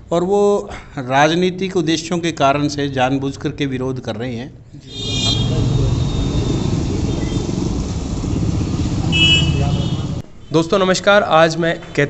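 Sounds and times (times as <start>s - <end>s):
traffic rumble: 4.8s - 10.4s.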